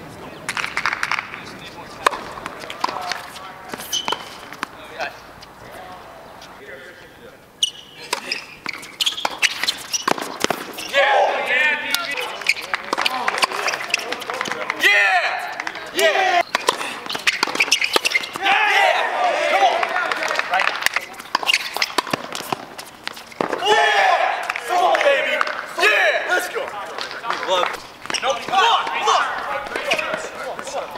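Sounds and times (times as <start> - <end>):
voices calling out: 0.0 - 30.9
tennis balls struck by rackets: 0.4 - 6.6, 7.9 - 14.8, 15.4 - 25.7, 26.6 - 30.9
balls bouncing on hard court: 0.5 - 5.0, 8.0 - 10.9, 11.9 - 14.8, 15.4 - 18.5, 19.5 - 23.7, 26.9 - 30.9.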